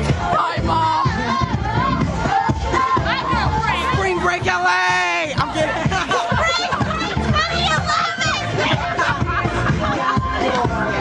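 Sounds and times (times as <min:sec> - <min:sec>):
crowd talking and calling out: 0:00.0 - 0:11.0
party music: 0:00.0 - 0:11.0.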